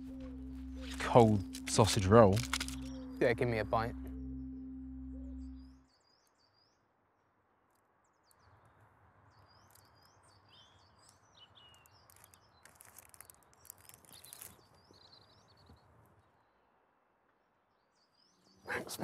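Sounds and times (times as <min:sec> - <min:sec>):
low held music note: 0:00.0 - 0:05.8
small birds chirping: 0:08.1 - 0:16.6.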